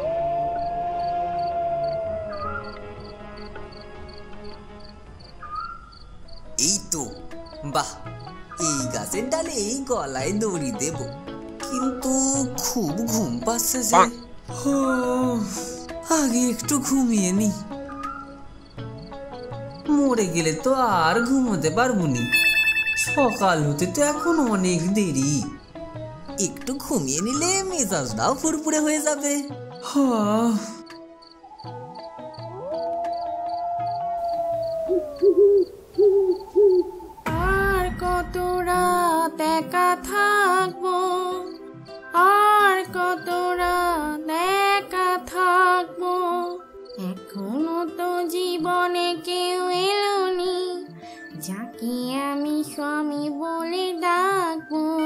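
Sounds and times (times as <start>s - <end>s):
owl hooting: 0.0s - 2.8s, 31.4s - 37.3s
crickets chirping: 0.0s - 39.2s, 40.2s - 43.9s, 45.4s - 49.0s
wavering gliding vocal sounds: 13.9s - 15.5s.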